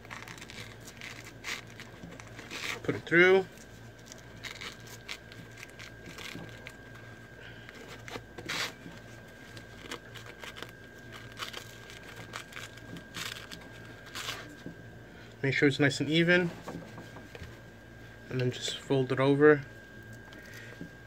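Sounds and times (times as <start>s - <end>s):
nylon webbing rustling and scraping: 0.0s - 14.8s.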